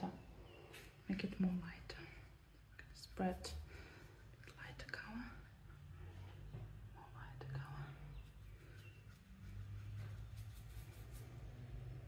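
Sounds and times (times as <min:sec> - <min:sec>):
person whispering: 0:01.1 - 0:03.6, 0:04.5 - 0:05.5, 0:06.9 - 0:08.3.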